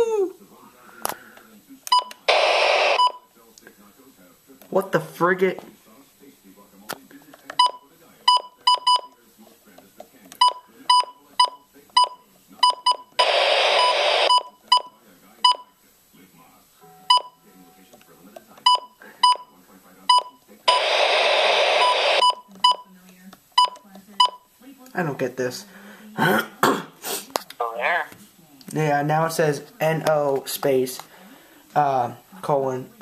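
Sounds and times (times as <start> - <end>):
radio beeping with clicks: 1.9 - 3.2, 10.3 - 14.9, 20.1 - 24.4
radio hiss burst: 2.2 - 3.0, 13.2 - 14.4, 20.7 - 22.2.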